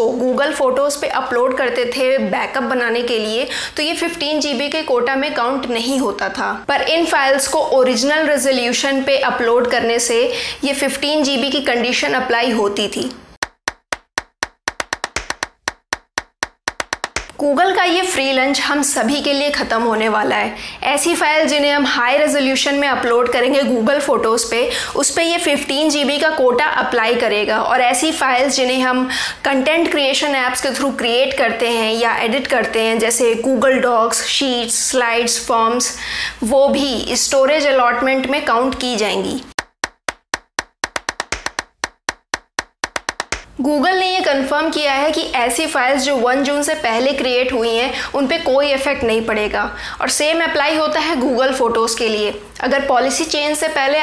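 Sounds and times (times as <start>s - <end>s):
rhythmic dry clicks: 13.4s - 17.4s.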